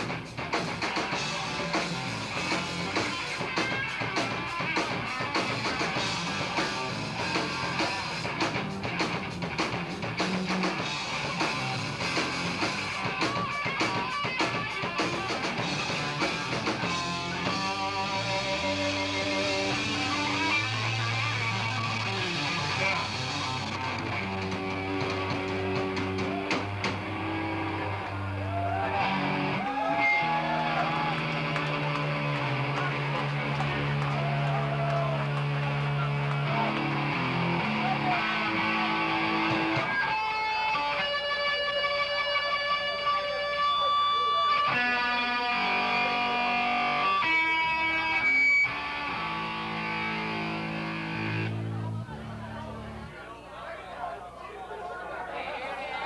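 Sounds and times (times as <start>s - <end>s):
rock band playing: 0.0s - 53.1s.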